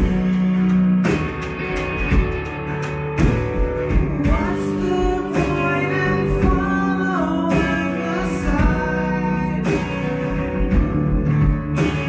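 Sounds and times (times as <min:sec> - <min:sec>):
live band playing: 0:00.0 - 0:12.0
sustained guitar chords: 0:00.0 - 0:12.0.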